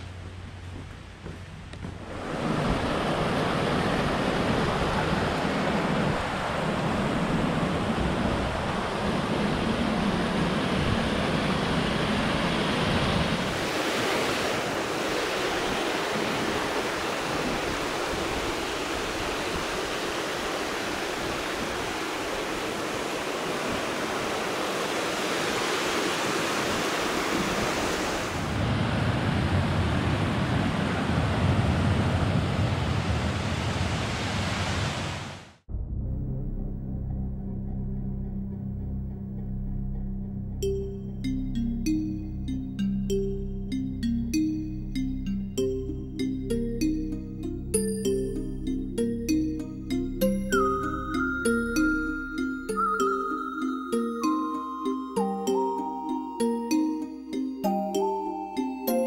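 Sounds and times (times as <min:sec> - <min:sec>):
deep rumble: 0:35.7 - 0:41.2.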